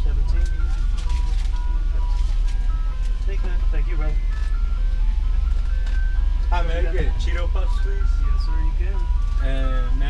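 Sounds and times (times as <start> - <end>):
ice cream truck jingle: 0.0 - 10.0
truck engine rumbling: 0.0 - 10.0.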